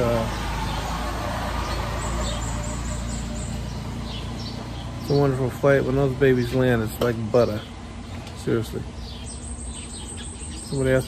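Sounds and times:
low background hum and rumble: 0:02.6 - 0:11.0.

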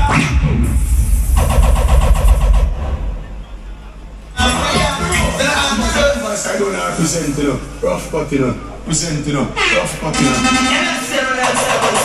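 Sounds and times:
rapid stuttering pulse: 0:00.0 - 0:03.4
dancehall music with heavy bass: 0:00.0 - 0:03.6, 0:04.4 - 0:07.8, 0:09.6 - 0:12.0.

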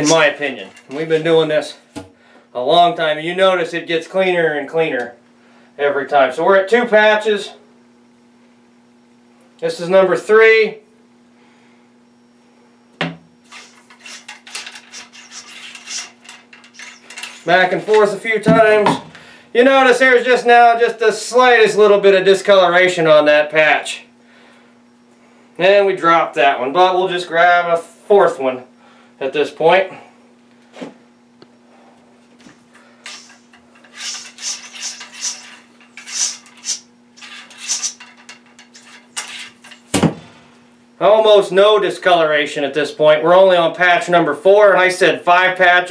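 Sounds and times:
ramrod scraping in a bore: 0:13.5 - 0:18.1, 0:33.0 - 0:39.9
sharp knock: 0:39.9 - 0:40.6.

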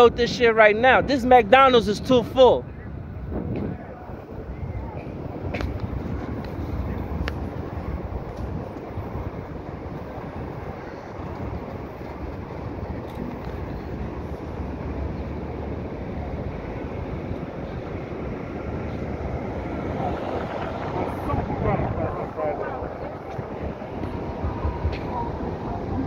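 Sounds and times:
low rumble of traffic: 0:00.0 - 0:26.0.

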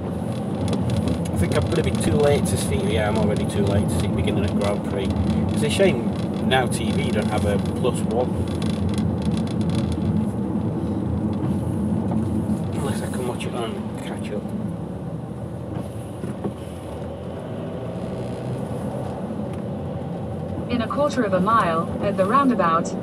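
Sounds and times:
car driving on wet road: 0:00.0 - 0:23.0.

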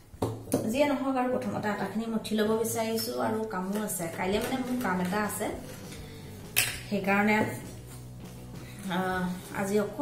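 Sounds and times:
kitchenware clink: 0:06.5 - 0:06.9.

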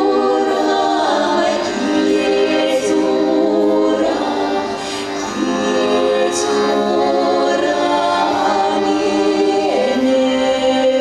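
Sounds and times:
women singing in harmony: 0:00.0 - 0:11.0.

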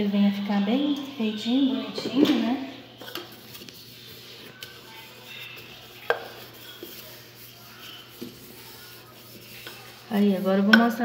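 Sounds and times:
cup tapping dough on stone: 0:06.1 - 0:06.4.

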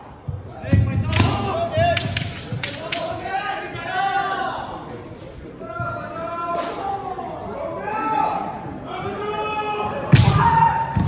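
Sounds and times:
fencers shouting: 0:00.5 - 0:04.9, 0:05.6 - 0:11.0
bamboo swords clacking: 0:01.1 - 0:03.1.

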